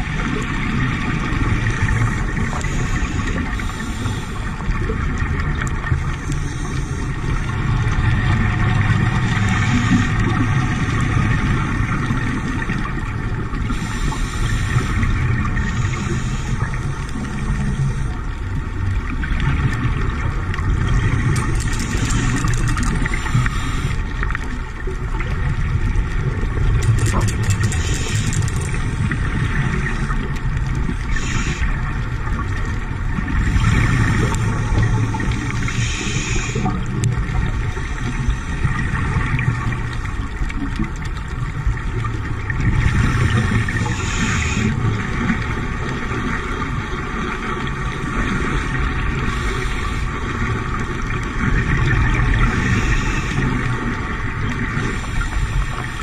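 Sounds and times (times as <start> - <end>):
low underwater drone: 0.0 - 56.0
regulator bubbles hissing: 0.0 - 56.0.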